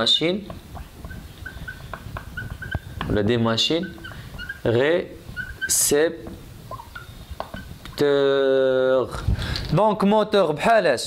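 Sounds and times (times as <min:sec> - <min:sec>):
marker squeaking on whiteboard: 0:00.0 - 0:08.1.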